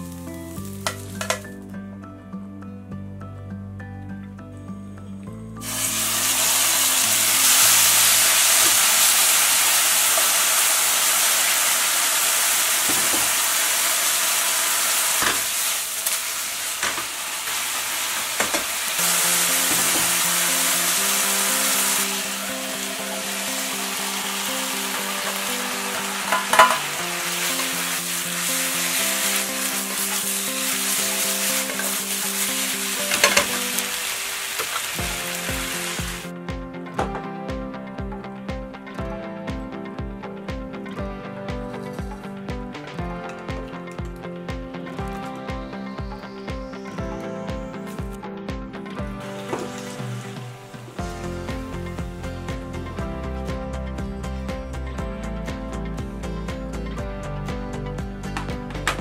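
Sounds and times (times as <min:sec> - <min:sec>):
meat sizzling in hot oil: 0:00.0 - 0:01.4, 0:05.6 - 0:36.3
utensil knocking against pan: 0:26.3 - 0:27.0.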